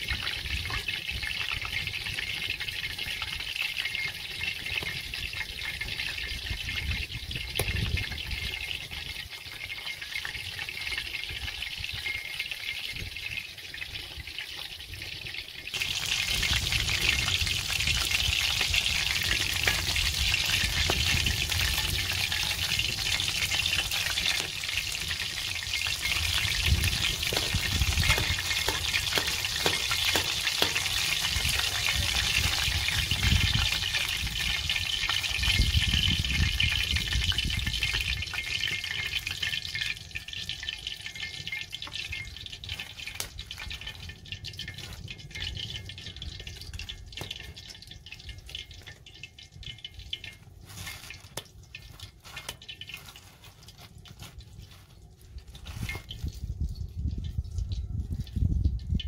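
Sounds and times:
fish sizzling in hot oil: 0.0 - 59.0.

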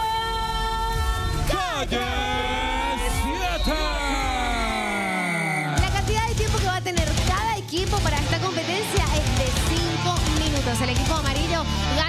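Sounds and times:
rock guitar music: 5.8 - 12.0.

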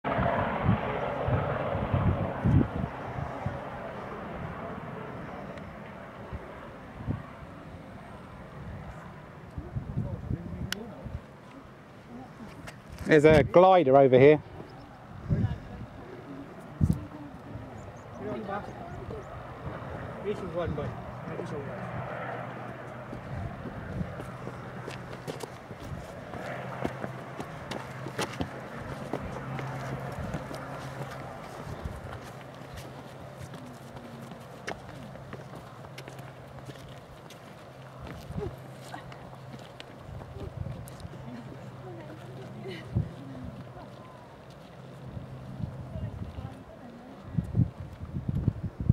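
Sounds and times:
murmured voices: 14.5 - 23.6.

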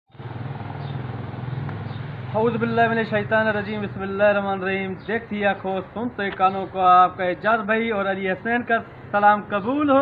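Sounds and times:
engine running with low hum: 0.1 - 10.0.

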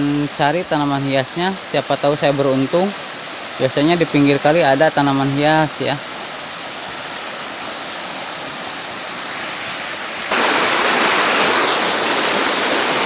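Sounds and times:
stream rushing over rocks: 0.0 - 13.0.

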